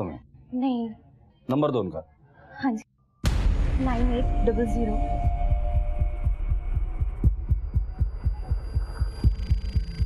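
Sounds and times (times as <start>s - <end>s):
suspense score: 3.0s - 10.0s
heartbeat-like pulse: 3.2s - 10.0s.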